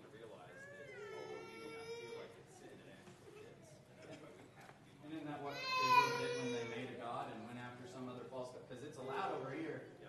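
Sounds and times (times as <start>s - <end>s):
faint background talking: 0.0s - 10.0s
young child crying: 0.6s - 2.3s, 5.5s - 6.9s.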